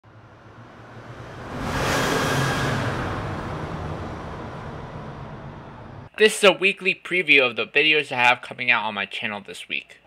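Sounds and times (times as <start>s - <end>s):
low rumble: 0.0s - 6.1s
loud rush of noise: 0.1s - 6.1s.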